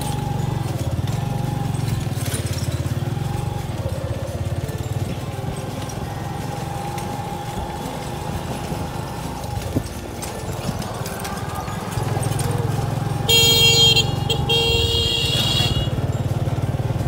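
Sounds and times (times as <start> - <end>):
motorcycle engine running: 0.0 - 17.0.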